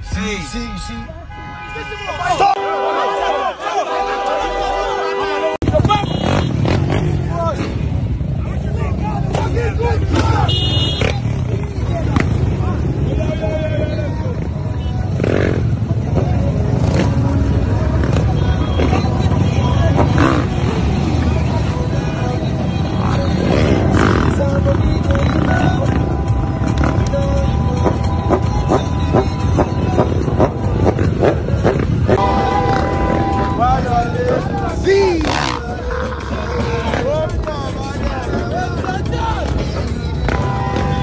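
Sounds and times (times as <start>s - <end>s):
crowd shouting and yelling: 0.0s - 15.3s, 32.1s - 41.0s
motorcycle engines running: 5.6s - 41.0s
music playing: 16.5s - 41.0s.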